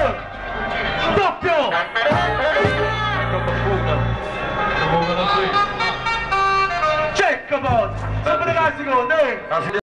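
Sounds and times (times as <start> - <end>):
festival song long steady note: 0.0 - 8.6
loud voices calling out: 0.0 - 8.6.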